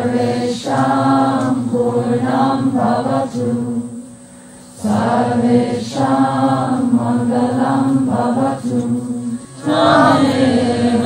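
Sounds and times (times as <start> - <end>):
mantra chanted on held pitch: 4.8 - 11.0.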